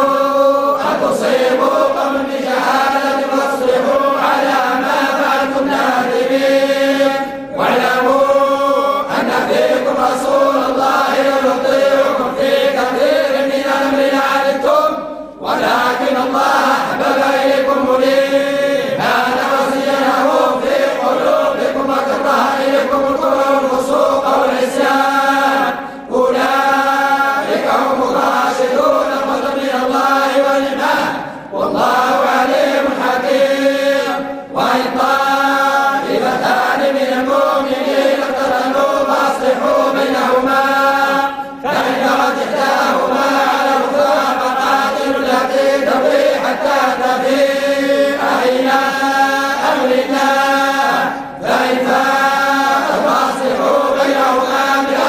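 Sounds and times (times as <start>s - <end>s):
men chanting in unison: 0.0s - 55.0s.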